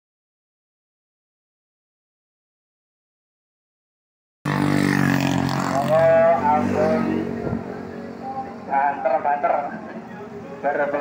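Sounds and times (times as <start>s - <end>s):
vehicle engine passing by: 4.5s - 11.0s.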